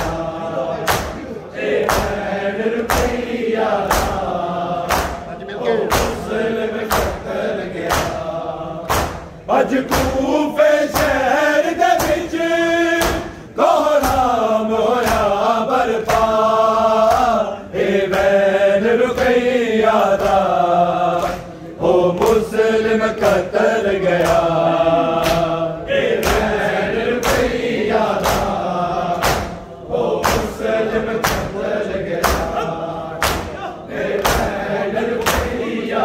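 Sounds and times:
men chanting a lament: 0:00.0 - 0:36.0.

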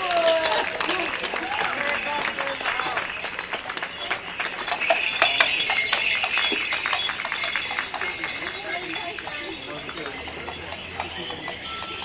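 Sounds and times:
leg bells jingling: 0:00.0 - 0:12.0.

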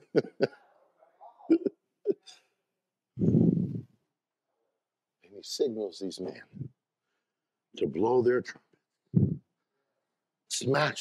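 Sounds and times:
man laughing: 0:00.0 - 0:00.6, 0:01.5 - 0:02.2.

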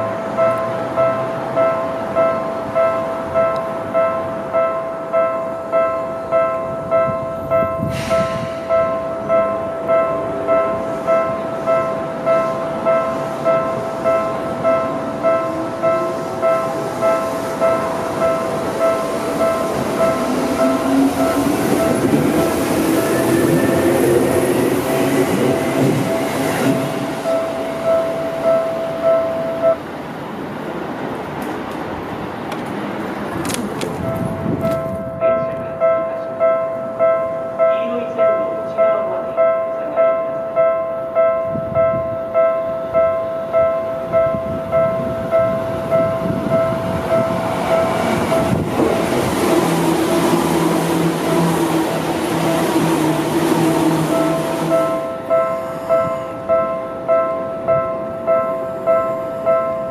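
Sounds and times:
level-crossing bell ringing: 0:00.0 - 0:29.8
train wheels on rails: 0:06.5 - 0:36.9, 0:44.2 - 0:56.5
train motor whine: 0:19.2 - 0:28.4, 0:46.8 - 0:55.2.

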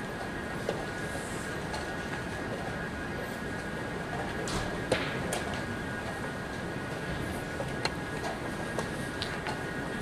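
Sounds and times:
hall background noise: 0:00.0 - 0:10.0.

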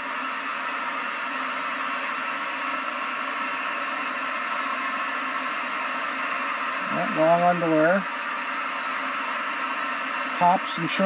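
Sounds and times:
gas burner hissing: 0:00.0 - 0:11.0.

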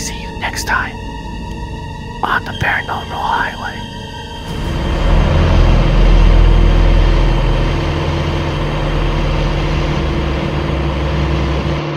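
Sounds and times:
car engine running: 0:04.4 - 0:11.9.

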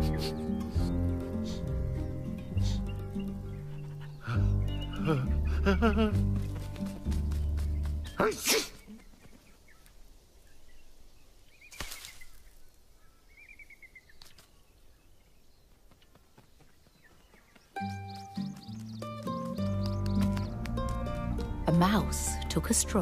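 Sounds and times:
faint bird chirps: 0:00.0 - 0:05.4, 0:08.0 - 0:20.6
gentle music: 0:00.0 - 0:08.2, 0:17.8 - 0:23.0.

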